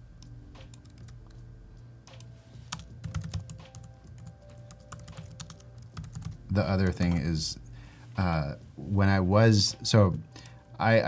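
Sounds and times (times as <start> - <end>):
laptop keyboard typing: 0.6 - 1.4, 2.1 - 7.3.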